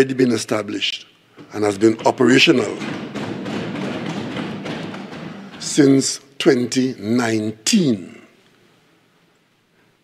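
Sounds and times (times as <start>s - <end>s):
thumping on wooden desks: 1.4s - 6.8s.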